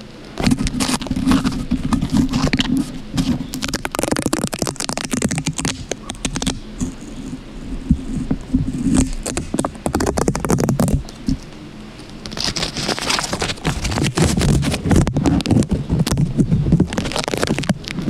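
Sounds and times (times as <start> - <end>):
fingernails scratching tape on microphone: 0.4 - 11.5, 12.2 - 18.0.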